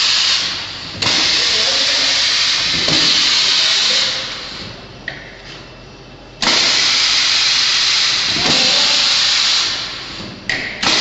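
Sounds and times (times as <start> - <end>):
compressed air hissing: 0.0 - 4.6, 6.4 - 11.0.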